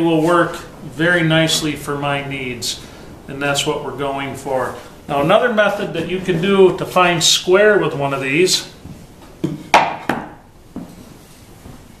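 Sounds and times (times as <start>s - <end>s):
plywood knocks: 9.4s - 10.9s.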